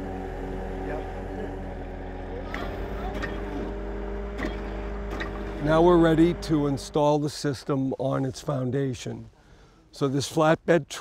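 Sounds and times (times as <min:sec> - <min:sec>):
engine running steadily: 0:00.0 - 0:08.5.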